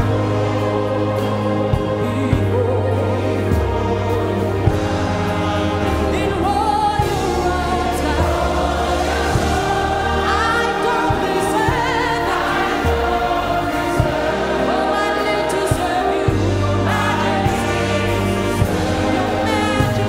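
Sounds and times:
choir singing held notes: 0.0 - 20.0
sustained bass line: 0.0 - 20.0.

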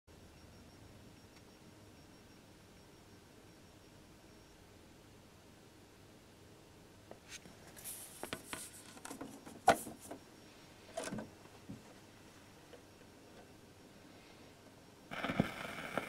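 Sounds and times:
faint room hiss: 0.1 - 16.0
record handling clicks and rustles: 7.1 - 10.2, 10.9 - 11.9.

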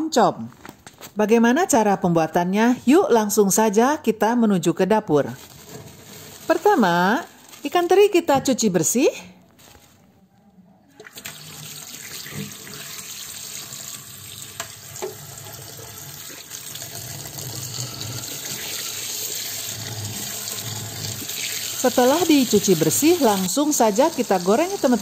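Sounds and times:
tap water running into strainer: 11.0 - 25.0.

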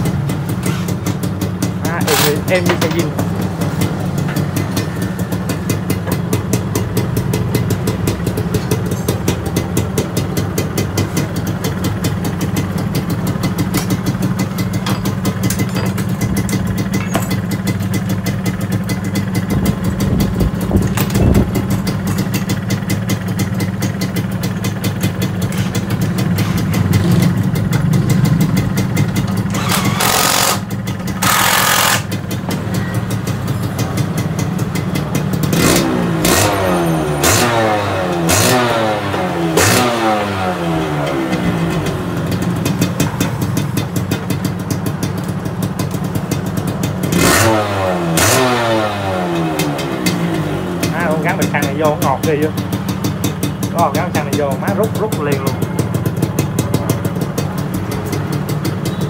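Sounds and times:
two-stroke engine idling: 0.0 - 59.0
engine revving: 29.4 - 32.2, 35.2 - 42.4, 47.0 - 52.6.

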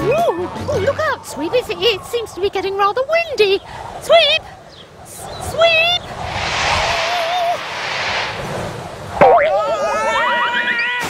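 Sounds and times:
wind gust whoosh: 6.0 - 9.2.

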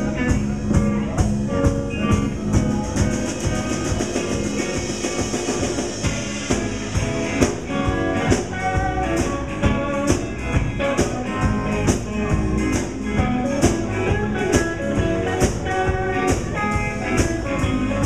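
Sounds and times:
bass guitar: 0.0 - 18.0
drum kit beat: 0.0 - 18.0
electric guitar: 0.0 - 18.0.

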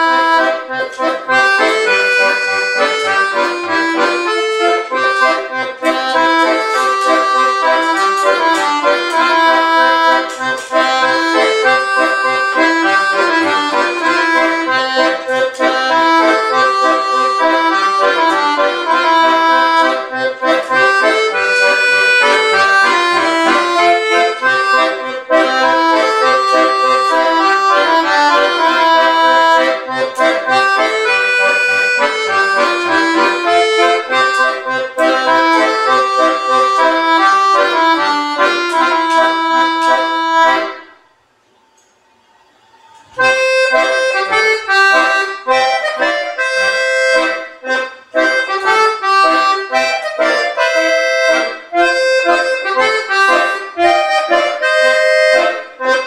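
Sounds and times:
piano accordion playing: 0.0 - 41.4, 43.0 - 56.0.

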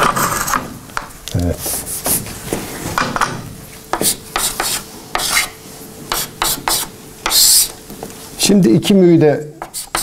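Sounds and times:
eraser scrubbing chalkboard: 4.0 - 7.7, 9.6 - 10.0.

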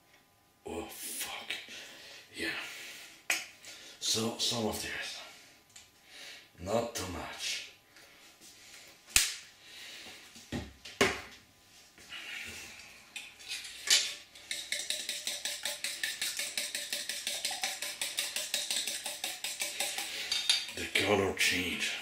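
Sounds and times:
fork beating eggs in bowl: 13.2 - 21.0.

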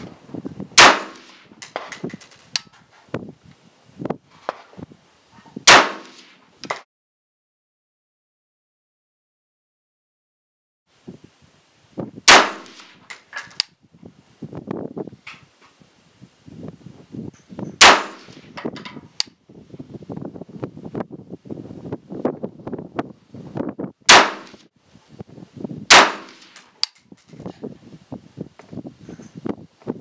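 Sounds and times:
rifle shots: 0.8 - 2.0, 5.7 - 6.4, 12.3 - 13.0, 17.8 - 18.4, 24.1 - 24.6, 25.9 - 26.8
metallic clinks and handling clatter: 1.6 - 3.0, 13.1 - 13.7, 26.5 - 27.6.

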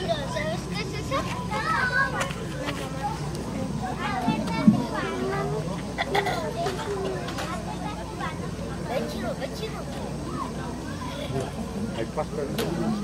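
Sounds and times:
children's voices: 0.0 - 11.8
crowd chatter: 0.0 - 13.0.

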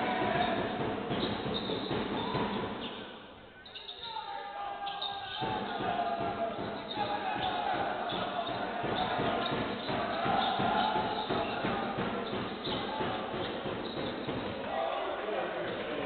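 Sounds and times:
players calling out: 3.6 - 16.0
basketball dribbling on hardwood: 5.4 - 14.6.

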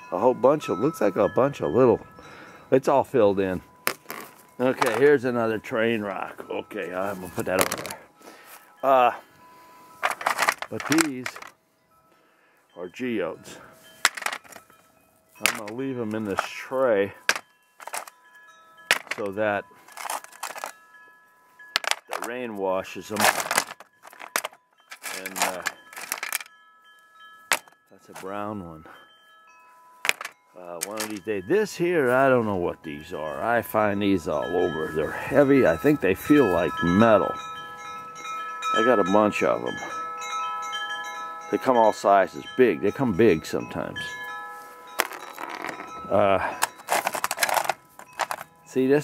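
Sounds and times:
faint high ringing tones: 0.0 - 49.0
stones clinking on metal tray: 3.9 - 5.1, 7.4 - 8.0, 10.0 - 11.5, 14.0 - 14.7, 15.4 - 16.6, 17.2 - 18.1, 18.9 - 20.7, 21.7 - 22.3, 23.0 - 26.5, 27.5 - 28.3, 30.0 - 31.2, 45.0 - 48.5.

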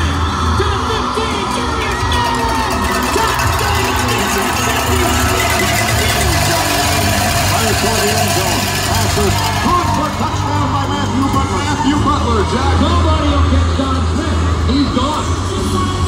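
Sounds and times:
crowd babble: 0.0 - 16.0
music over loudspeakers: 0.0 - 16.0.

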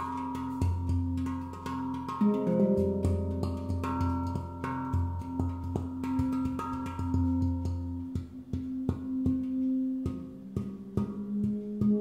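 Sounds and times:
deep handpan note ringing: 0.0 - 12.0
handpan taps: 0.0 - 12.0.

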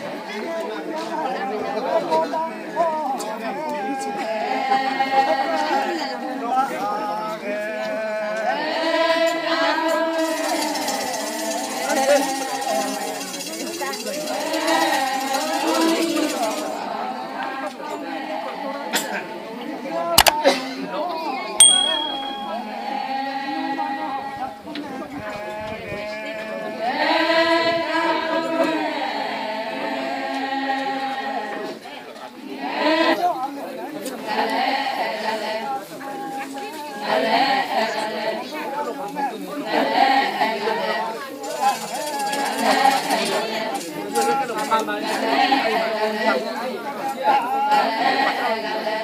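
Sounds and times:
chorus of women singing: 0.0 - 2.2, 3.4 - 20.7, 21.6 - 41.2, 42.1 - 49.0
metallic jingling rattle: 21.6 - 22.5.

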